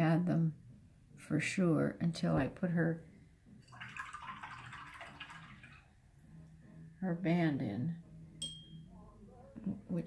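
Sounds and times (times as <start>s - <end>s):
faint low hum: 0.0s - 10.0s
light clink with ringing tone: 8.4s - 8.9s.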